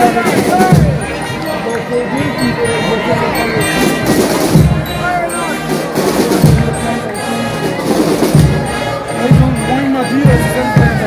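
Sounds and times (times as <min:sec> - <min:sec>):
bass drum beats: 0:00.0 - 0:07.0, 0:07.8 - 0:11.0
crowd voices: 0:00.0 - 0:11.0
marching band music: 0:00.0 - 0:11.0.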